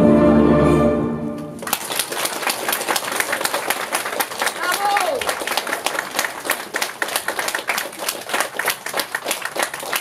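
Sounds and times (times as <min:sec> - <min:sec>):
music: 0:00.0 - 0:01.6
audience applauding: 0:01.6 - 0:10.0.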